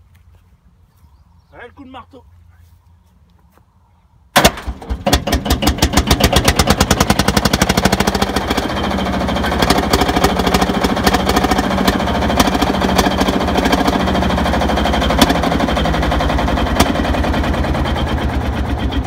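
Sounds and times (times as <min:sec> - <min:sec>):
diesel tractor engine running: 0:04.4 - 0:19.0.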